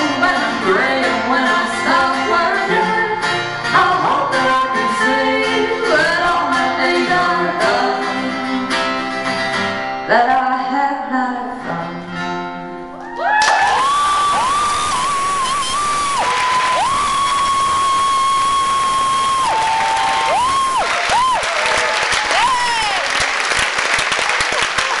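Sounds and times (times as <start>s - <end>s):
audience applauding: 13.0s - 25.0s
audience cheering: 13.0s - 25.0s
loud swooping whistles: 13.8s - 21.5s.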